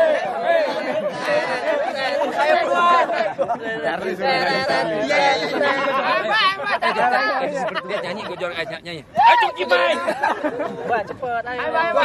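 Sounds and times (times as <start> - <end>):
men chattering: 0.0 - 12.0.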